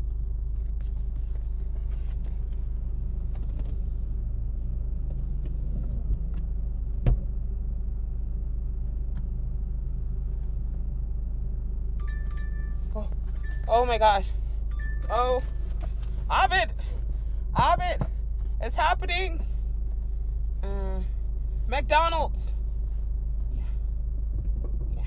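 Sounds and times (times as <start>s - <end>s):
low rumble in car cabin: 0.0s - 25.0s
phone alert tone: 12.0s - 13.9s, 14.7s - 15.7s
faint knocks and thump: 24.3s - 25.0s.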